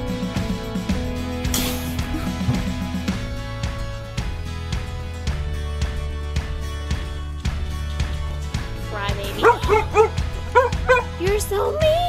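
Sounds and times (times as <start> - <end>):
background music: 0.0 - 12.0
dog yipping: 9.4 - 11.2.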